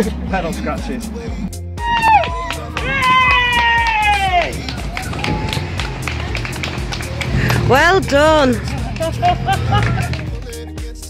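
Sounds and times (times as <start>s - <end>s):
song with steady beat: 1.1s - 11.0s.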